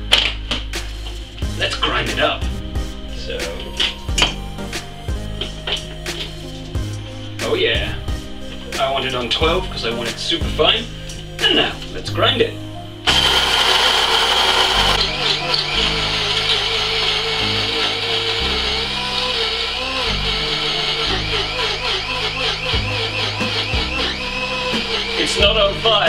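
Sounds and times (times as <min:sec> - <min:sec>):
electric coffee grinder whining: 0:13.0 - 0:26.0.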